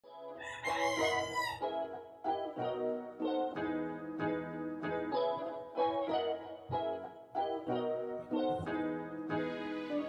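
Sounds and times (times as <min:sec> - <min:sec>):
soft music: 0:00.0 - 0:10.0
rooster crowing: 0:00.4 - 0:01.7.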